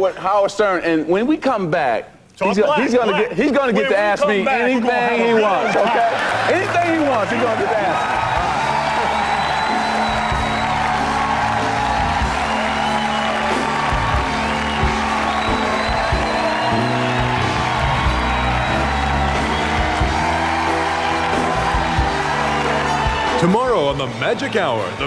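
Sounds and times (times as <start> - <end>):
audience cheering: 2.5 - 25.0
band playing upbeat groove: 6.5 - 25.0.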